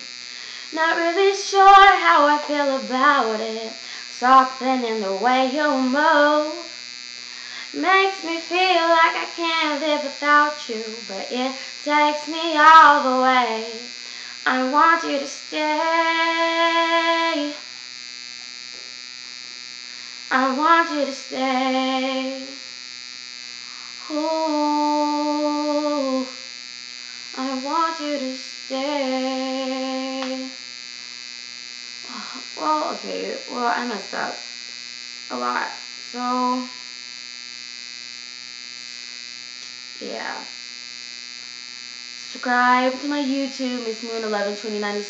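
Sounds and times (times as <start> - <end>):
electrical buzz with high whine: 0.0 - 45.0.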